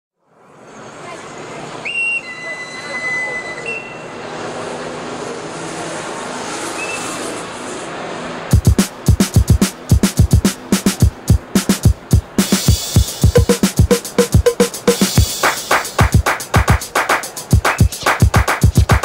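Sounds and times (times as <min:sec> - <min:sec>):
voices: 0:00.8 - 0:07.3
whistle-like tones: 0:01.8 - 0:04.2, 0:06.8 - 0:07.2
train running: 0:01.9 - 0:19.0
electro drum-machine beat: 0:08.5 - 0:19.0.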